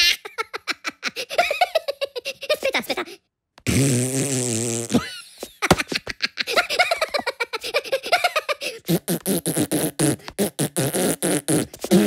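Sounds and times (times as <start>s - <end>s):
high-pitched giggle: 0.0s - 3.2s, 4.9s - 8.9s.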